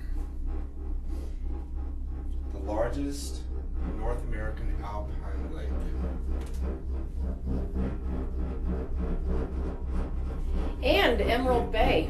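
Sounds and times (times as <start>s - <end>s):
gondola cabin rumble: 0.0s - 12.0s.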